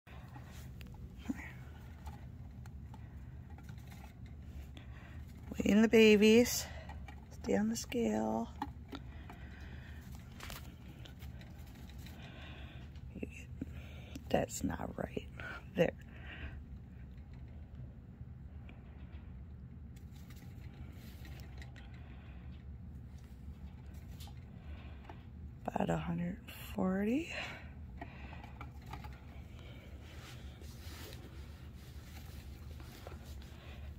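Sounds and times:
low background rumble: 0.1 - 33.9
low steady hum: 0.1 - 33.9
faint scrapes and ticks: 0.2 - 13.0.

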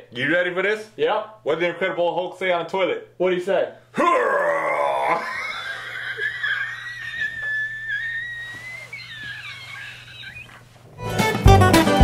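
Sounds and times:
man laughing: 5.0 - 10.6.

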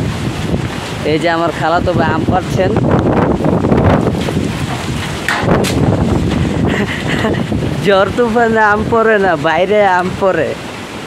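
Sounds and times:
storm wind buffeting microphone: 0.0 - 11.0.

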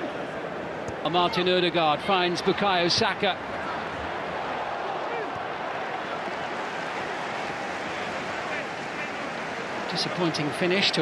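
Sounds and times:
steady wash of crowd noise: 0.0 - 11.0.

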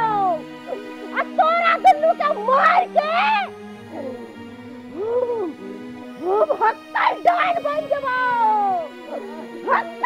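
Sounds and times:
high wailing cry: 0.0 - 4.2, 6.6 - 10.0
background music with drone: 0.0 - 10.0.

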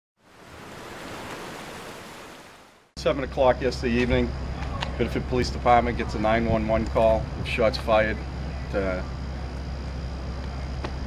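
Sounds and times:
ocean surf rushing: 0.2 - 2.9.

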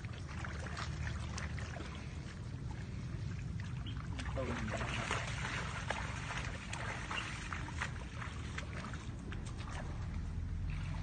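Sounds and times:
steady low rumble: 0.0 - 11.0
water sloshing and splashing: 0.0 - 11.0.

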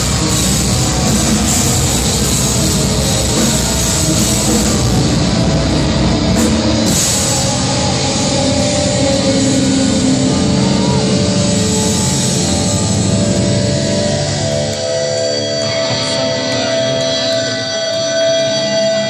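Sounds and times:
black metal band playing live: 0.0 - 19.0
ringing guitar notes: 0.0 - 19.0.

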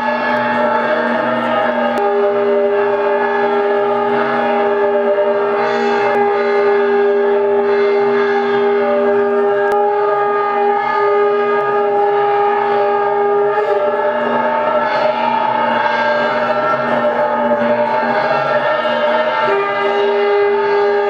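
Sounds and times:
drone of held notes: 0.0 - 21.0.

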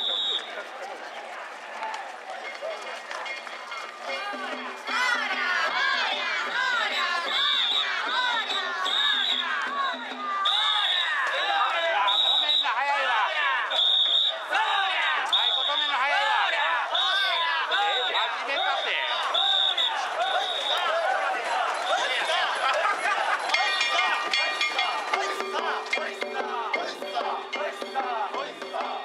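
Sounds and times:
footsteps of a large group: 0.0 - 6.6, 11.2 - 26.2
crowd chanting and calling: 0.0 - 29.0
voices and shouts: 0.0 - 29.0
festival music: 3.2 - 13.2, 21.5 - 29.0.

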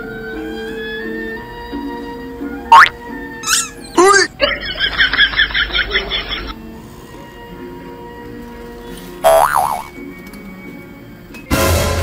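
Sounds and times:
faint background music: 0.0 - 12.0
cartoon boing sound effect: 2.7 - 4.3, 9.2 - 9.9.

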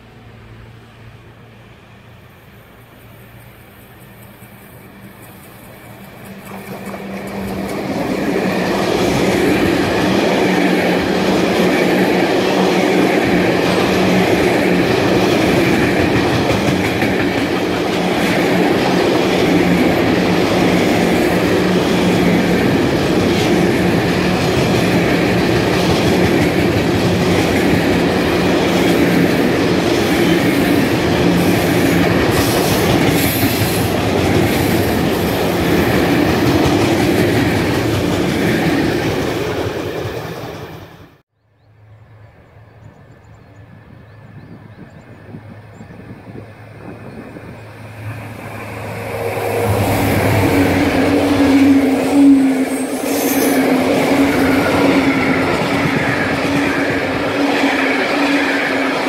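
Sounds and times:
train wheels clattering on rails: 3.4 - 40.9
locomotive engine: 46.5 - 59.0.

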